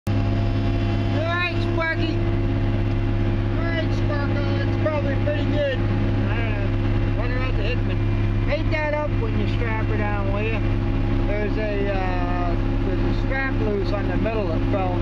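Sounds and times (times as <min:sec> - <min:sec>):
diesel engine idling: 0:00.1 - 0:15.0
muffled voices talking: 0:03.5 - 0:10.7, 0:11.3 - 0:15.0.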